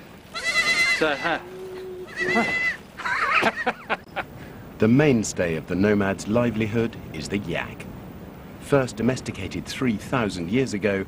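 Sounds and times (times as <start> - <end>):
lambs and goat kids bleating: 0.3 - 2.8.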